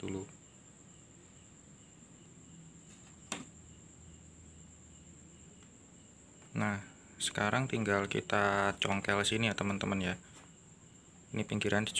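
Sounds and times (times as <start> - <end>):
faint steady hum: 0.0 - 11.9.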